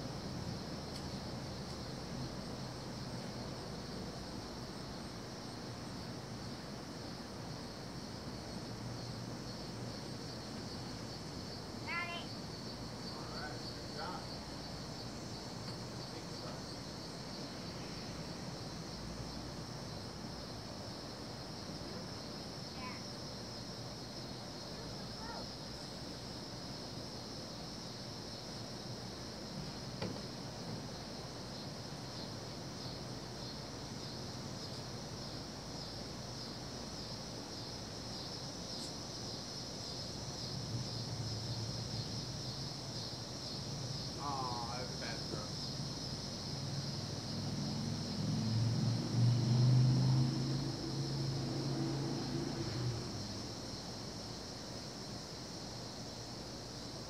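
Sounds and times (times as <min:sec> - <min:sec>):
high-pitched insect chorus: 0:00.0 - 0:57.0
low engine-like hum: 0:46.6 - 0:53.8.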